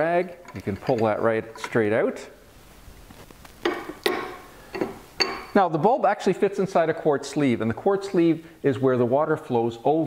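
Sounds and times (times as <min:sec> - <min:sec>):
hard objects clicking and knocking: 0:00.4 - 0:01.9, 0:03.5 - 0:05.6.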